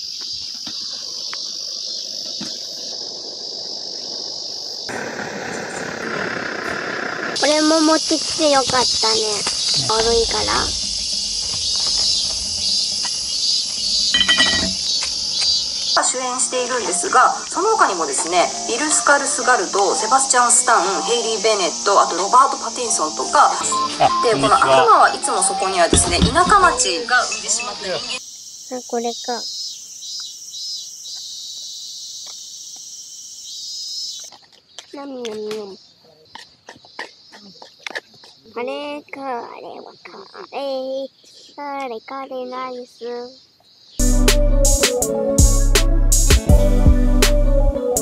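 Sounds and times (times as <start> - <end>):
insect chorus chirring: 0.0 - 44.0.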